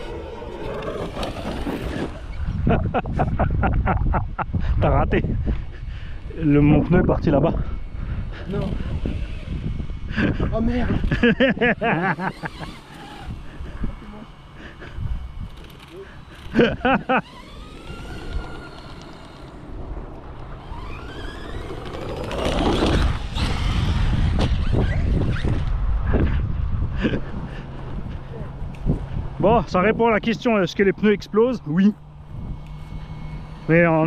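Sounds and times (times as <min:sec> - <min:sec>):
electric motor whining: 0:00.0 - 0:03.5, 0:04.5 - 0:25.9, 0:31.9 - 0:34.0.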